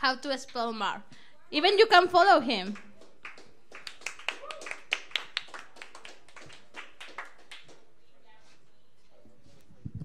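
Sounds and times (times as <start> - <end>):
small audience applause: 2.8 - 7.9.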